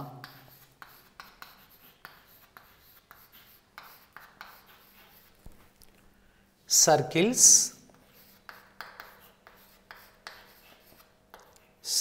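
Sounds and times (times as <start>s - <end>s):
chalk scratching on chalkboard: 0.0s - 5.7s, 7.4s - 12.0s.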